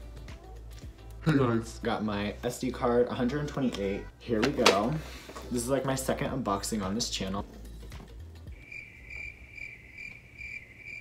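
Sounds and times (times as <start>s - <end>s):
crickets chirping: 8.5s - 11.0s.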